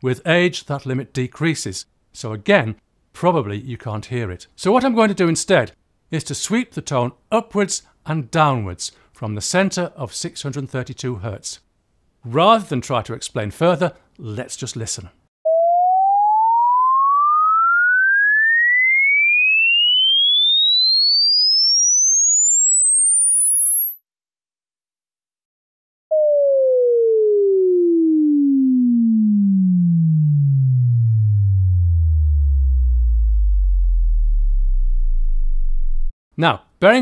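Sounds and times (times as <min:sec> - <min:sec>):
falling sine tone sweep: 0:15.5 - 0:24.8, 0:26.1 - 0:36.1
rising sine tone sweep: 0:15.5 - 0:24.8, 0:26.1 - 0:36.1.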